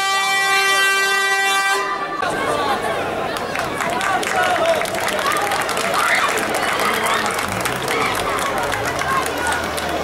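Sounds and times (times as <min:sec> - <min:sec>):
air horn blast: 0:00.0 - 0:02.2.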